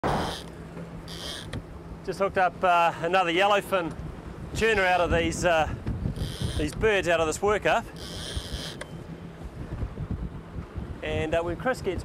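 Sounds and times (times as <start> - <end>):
boat engine humming: 0.0 - 12.0
wind buffeting microphone: 3.9 - 12.0.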